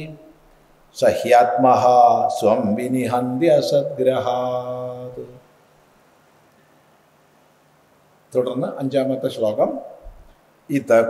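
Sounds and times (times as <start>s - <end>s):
man chanting: 0.0s - 0.4s, 1.0s - 5.5s.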